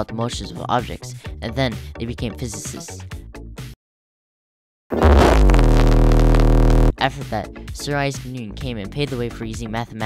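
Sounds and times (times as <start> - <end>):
loud distorted low buzzing tone: 4.9 - 6.9.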